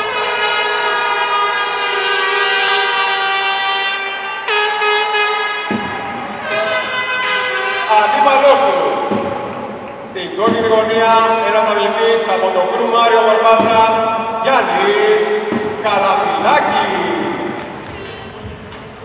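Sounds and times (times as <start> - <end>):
loud horn-like held tones: 0.0 - 9.0.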